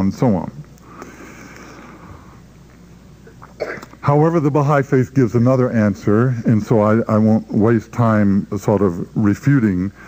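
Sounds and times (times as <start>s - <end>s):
faint room noise: 0.0s - 10.0s
person coughing: 3.3s - 4.0s.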